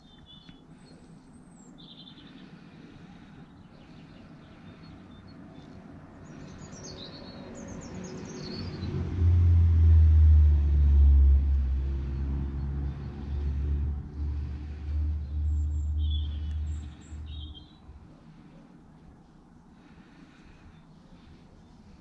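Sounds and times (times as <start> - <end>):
birds chirping: 0.0 - 9.0, 12.0 - 22.0
low engine-like rumble: 0.0 - 22.0.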